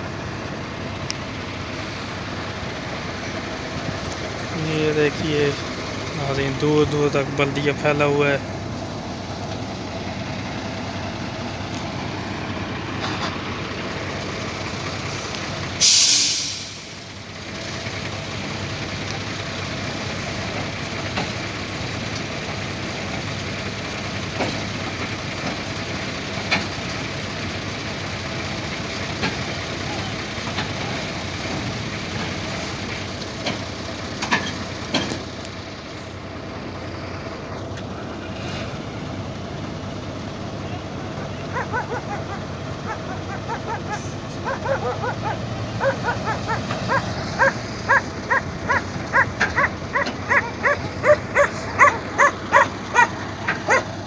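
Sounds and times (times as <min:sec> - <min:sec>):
diesel truck engine running: 0:00.0 - 0:54.0
air brake hiss: 0:15.8 - 0:17.0.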